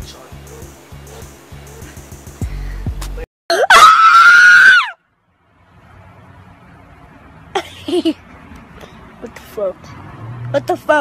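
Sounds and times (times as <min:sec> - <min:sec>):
hip-hop beat with heavy bass: 0:00.0 - 0:03.3
child screaming: 0:03.5 - 0:05.0.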